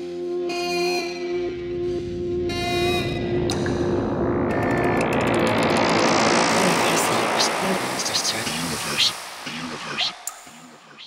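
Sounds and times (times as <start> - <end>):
electronic dub music: 2.5 - 11.0
rising noise sweep: 2.6 - 11.0
spoken voice sample: 6.5 - 11.0.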